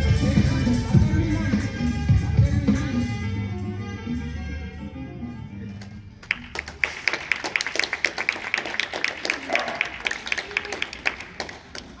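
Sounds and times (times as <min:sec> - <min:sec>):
audience applause: 0:06.2 - 0:12.0.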